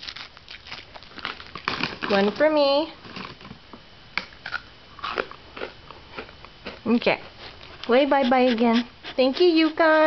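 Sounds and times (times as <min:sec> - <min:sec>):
crunchy biscuit chewing: 0:00.0 - 0:02.0, 0:04.4 - 0:07.9.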